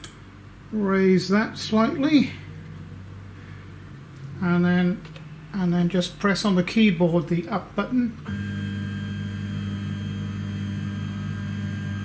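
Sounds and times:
motor humming: 8.3s - 12.0s.

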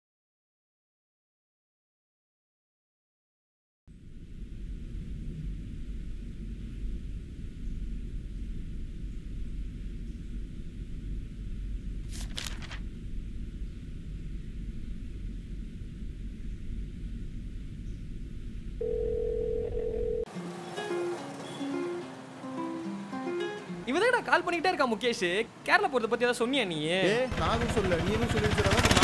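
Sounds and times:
low room rumble: 3.9s - 20.2s
paper rustling: 12.0s - 12.8s
telephone call tone: 18.8s - 20.3s.

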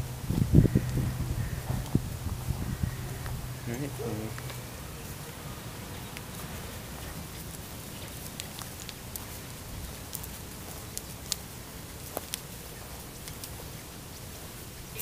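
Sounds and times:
hooves and footsteps on dry litter: 0.0s - 15.0s
low steady rumble: 0.0s - 15.0s.

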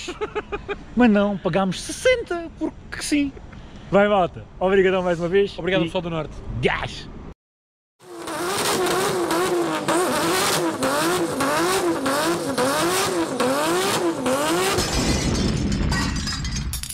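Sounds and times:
car engine revving: 8.0s - 14.9s.

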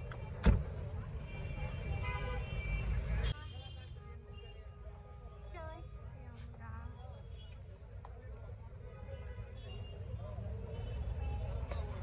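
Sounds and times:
faint car horn: 1.2s - 6.2s.

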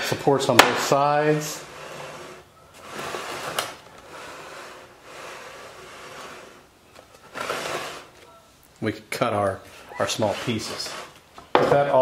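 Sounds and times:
metal base plate scraping wood: 0.7s - 8.3s, 10.0s - 12.0s.

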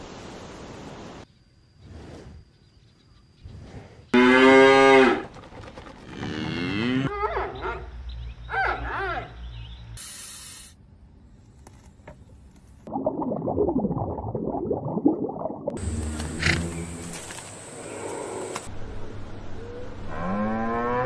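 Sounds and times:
cows mooing: 6.1s - 7.2s
short hiss: 10.0s - 10.8s.

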